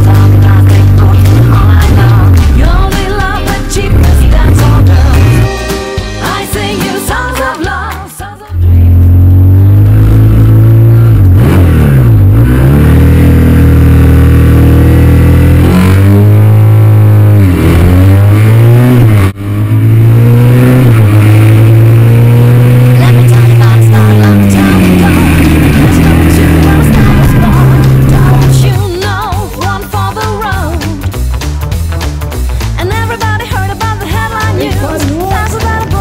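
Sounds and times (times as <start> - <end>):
motorcycle engine accelerating: 0.0 - 5.6, 8.5 - 29.0.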